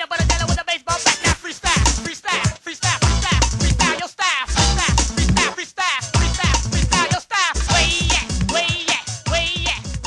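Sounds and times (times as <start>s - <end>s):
upbeat cartoon theme music: 0.0s - 10.0s.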